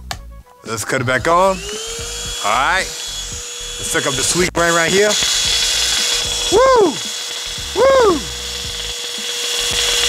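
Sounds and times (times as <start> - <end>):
handheld vacuum motor whining: 1.4 - 10.0.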